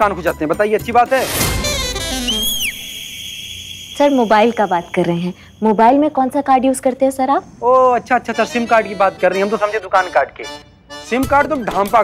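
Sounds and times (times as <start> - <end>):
swooping whistle-like tone: 1.7 - 6.2.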